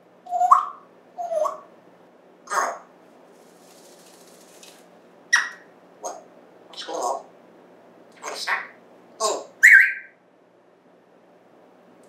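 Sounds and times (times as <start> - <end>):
parrot squeak: 0.3 - 1.7, 5.3 - 7.2, 9.3 - 10.2
feathers rustling: 3.2 - 5.0.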